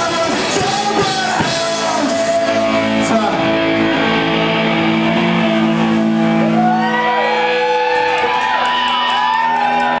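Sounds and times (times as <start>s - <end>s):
pop-punk band playing live: 0.0s - 10.0s
wailing guitar tones: 0.0s - 10.0s
held electric guitar chord: 2.0s - 7.5s.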